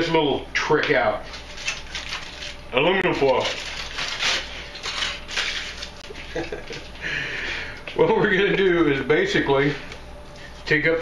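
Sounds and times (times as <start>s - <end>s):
aluminum foil crinkling: 1.2s - 6.9s.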